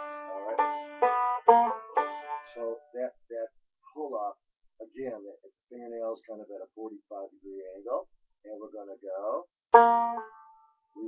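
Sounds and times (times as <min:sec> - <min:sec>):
banjo picked notes: 0:00.0 - 0:03.1, 0:09.7 - 0:11.0
man speaking: 0:00.3 - 0:00.6, 0:02.5 - 0:09.4.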